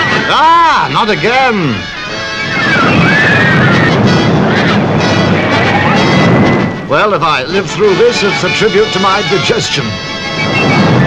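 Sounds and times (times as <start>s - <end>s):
high gliding cries: 0.0s - 6.9s
fairground ride noise: 0.0s - 11.0s
music: 0.0s - 11.0s.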